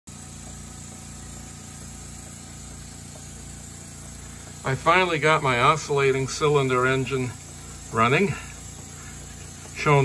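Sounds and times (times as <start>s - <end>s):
model steam engine running: 0.1s - 10.0s.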